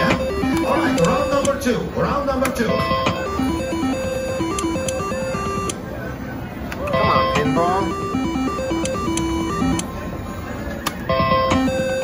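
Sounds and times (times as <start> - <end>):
slot machine beeping jingle: 0.0 - 1.6, 2.7 - 5.8, 6.9 - 9.9, 11.0 - 12.0
casino background: 0.0 - 5.9, 6.7 - 10.1.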